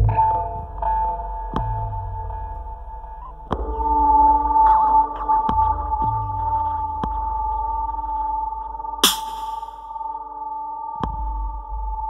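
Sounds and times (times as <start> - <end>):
electronic dance music: 9.0 - 9.8
sharp percussive hits: 9.0 - 9.9.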